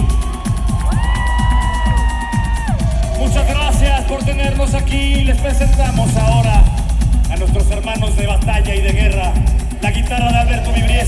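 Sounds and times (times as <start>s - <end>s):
kick drum beat: 0.0s - 11.0s
synth-pop band playing live: 0.0s - 11.0s.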